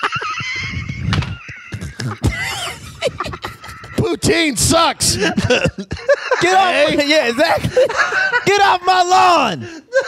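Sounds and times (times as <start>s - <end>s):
men laughing hard: 0.0s - 10.0s.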